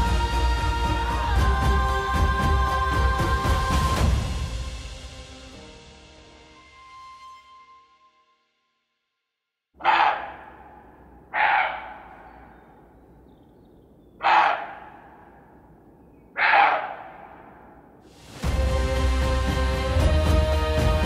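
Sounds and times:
harsh animal calls: 0:09.8 - 0:13.0, 0:14.0 - 0:15.6, 0:16.2 - 0:17.8.

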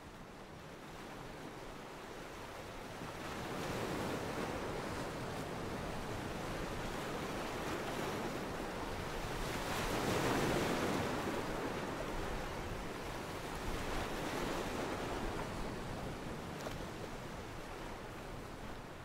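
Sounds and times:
waves breaking on a beach: 0:00.0 - 0:19.0.

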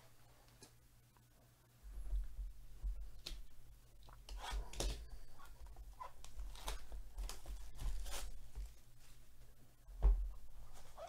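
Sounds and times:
faint low hum: 0:00.0 - 0:11.0
plastic shrink wrap crinkling: 0:04.8 - 0:08.9.

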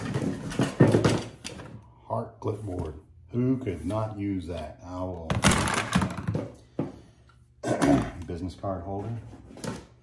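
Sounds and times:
man coughing: 0:07.6 - 0:08.2.

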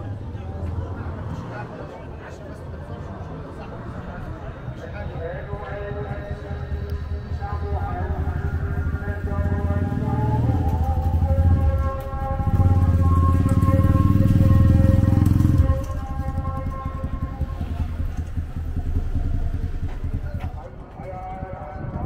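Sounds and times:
small motorcycle engine passing: 0:06.3 - 0:22.0.

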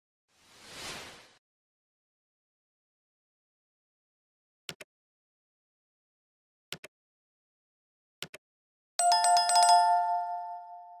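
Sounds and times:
notification bell jingle: 0:09.0 - 0:11.0.

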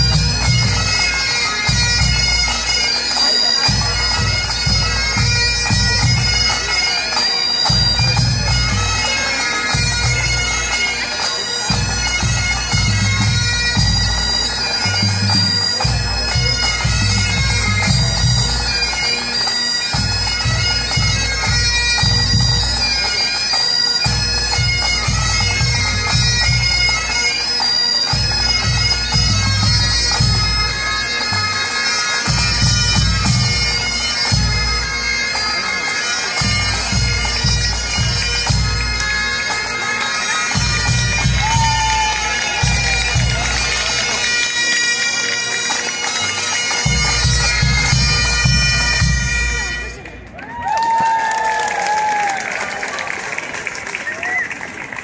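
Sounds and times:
bagpipes playing over drones: 0:00.0 - 0:50.3.

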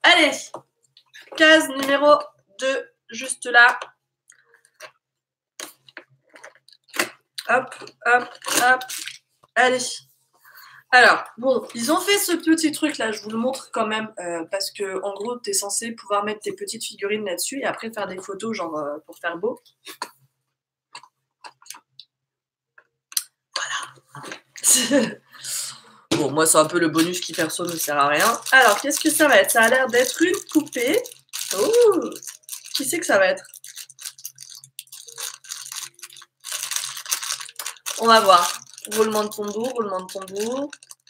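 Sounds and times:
cardboard crackling: 0:26.5 - 0:41.0.

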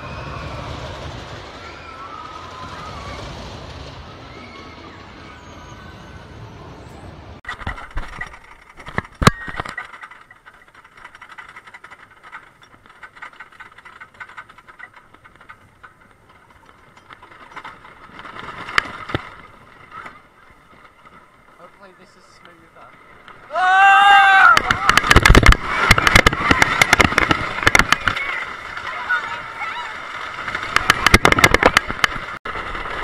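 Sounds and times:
roller coaster chain lift rattling: 0:00.0 - 0:33.0.

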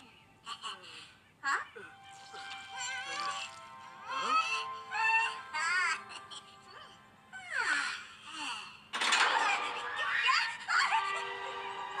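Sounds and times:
high cartoon character voices: 0:09.2 - 0:11.3.

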